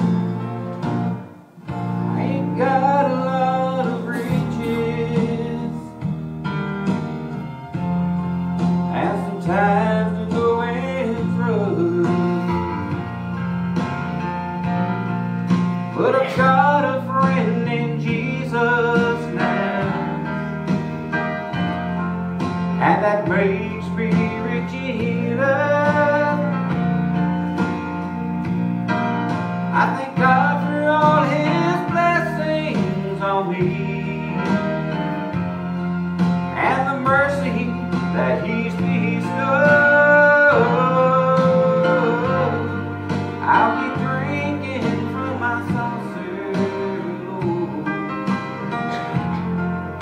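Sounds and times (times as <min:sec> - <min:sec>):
country gospel music: 0:00.0 - 0:50.0.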